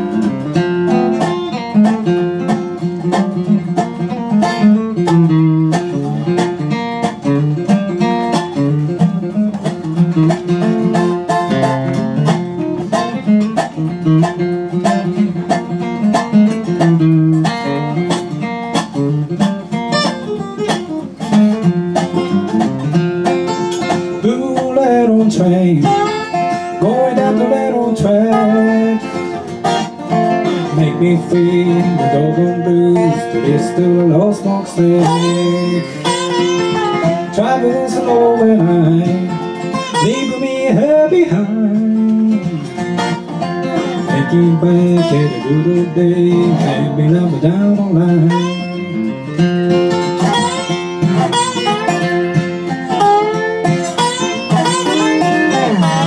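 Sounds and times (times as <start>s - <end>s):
acoustic guitar strummed: 0.0s - 56.0s
slide resonator guitar: 0.0s - 56.0s.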